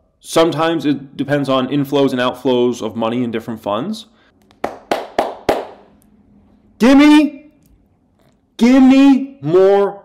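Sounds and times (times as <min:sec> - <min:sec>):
hand claps: 0:04.4 - 0:05.9.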